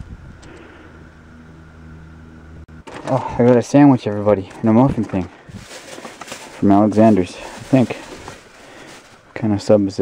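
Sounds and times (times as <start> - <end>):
lawn mower engine running: 0.2 - 9.4.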